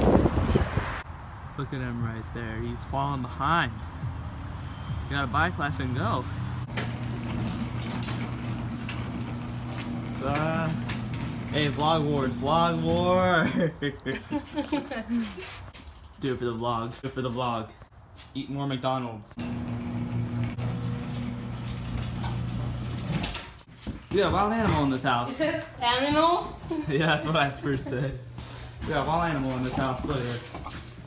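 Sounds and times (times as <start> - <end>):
door rollers clicking and rattling: 6.7 - 13.2, 19.4 - 24.6
garage door motor hum: 6.7 - 13.3, 19.4 - 23.7.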